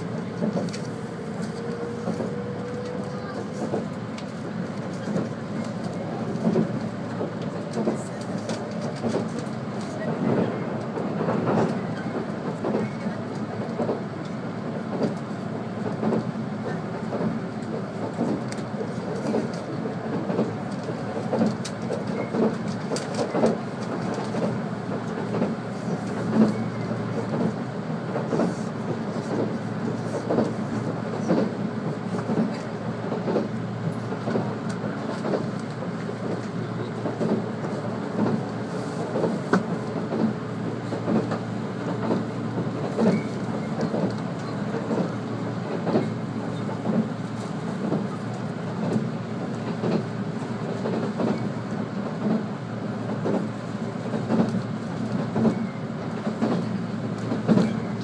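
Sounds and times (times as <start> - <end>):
train rolling noise: 0.0 - 58.0.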